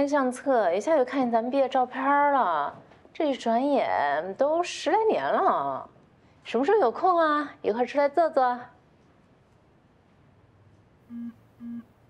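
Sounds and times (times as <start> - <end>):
smartphone electronic beeps: 11.1 - 11.9.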